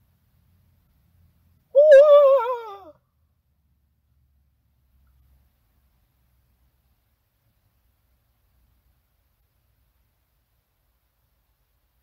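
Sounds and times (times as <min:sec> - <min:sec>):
woman screaming: 0:01.8 - 0:03.0.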